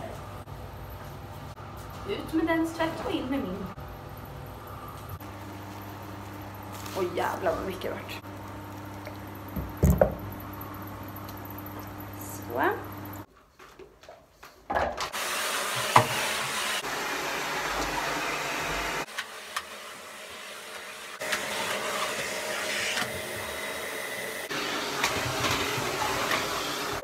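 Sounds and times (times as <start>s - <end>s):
vacuum cleaner running: 5.0s - 13.3s, 15.0s - 27.0s.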